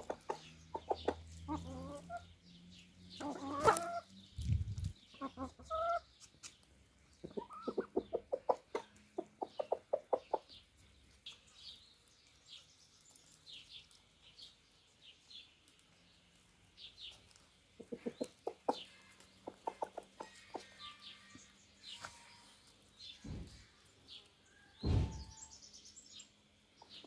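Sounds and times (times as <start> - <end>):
chickens clucking: 0.0 - 14.7, 15.6 - 25.4, 26.7 - 27.0.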